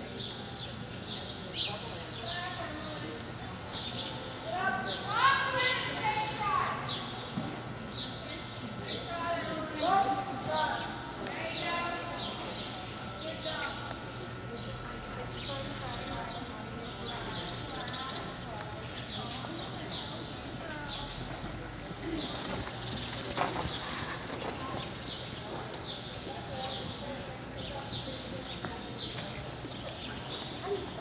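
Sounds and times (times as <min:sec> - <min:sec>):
spectators talking: 0:00.0 - 0:31.0.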